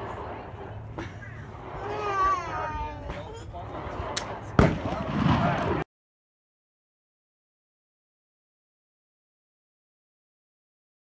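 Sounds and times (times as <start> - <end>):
rifle shot with echo: 3.8 - 5.8.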